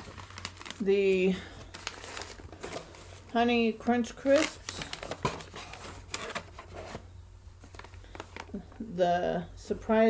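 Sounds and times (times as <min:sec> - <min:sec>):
snack pouches crinkling: 0:00.0 - 0:03.3, 0:07.6 - 0:08.6
rustling: 0:00.0 - 0:03.4, 0:04.2 - 0:08.6.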